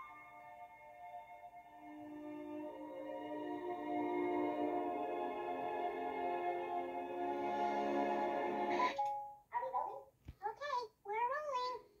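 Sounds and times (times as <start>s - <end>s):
high-pitched cartoon chipmunk voice: 9.6s - 11.9s.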